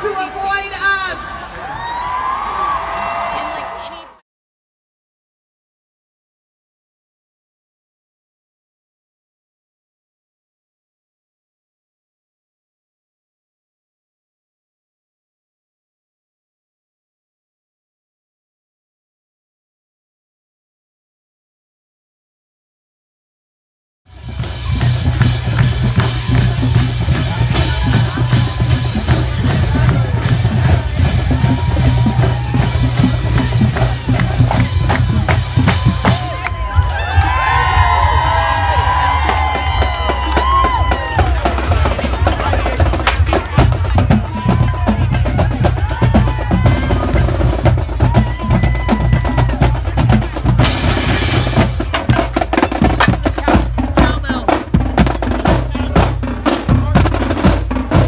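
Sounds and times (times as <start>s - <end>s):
bass drums beating: 24.1s - 58.0s
crowd voices: 24.2s - 58.0s.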